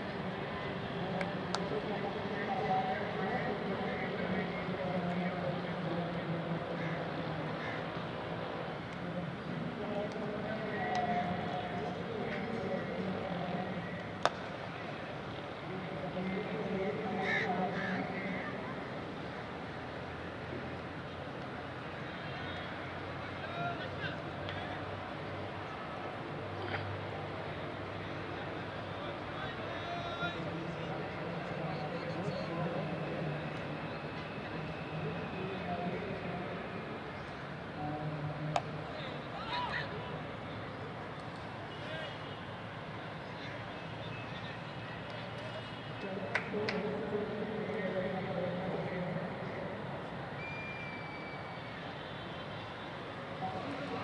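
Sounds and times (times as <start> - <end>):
murmur of voices: 0.0 - 54.0
outdoor background noise: 0.0 - 54.0.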